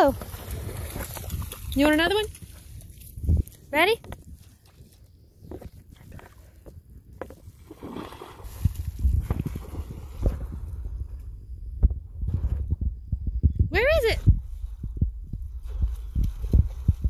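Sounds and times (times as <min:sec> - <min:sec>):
dog splashing through water: 0:00.0 - 0:03.3, 0:07.6 - 0:10.6.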